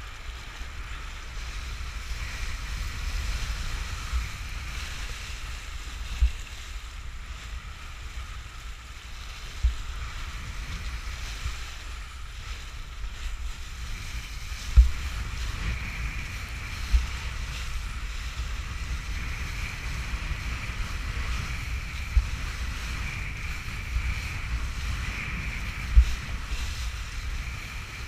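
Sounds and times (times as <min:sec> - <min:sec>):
wind rumble on microphone: 0:00.0 - 0:28.0.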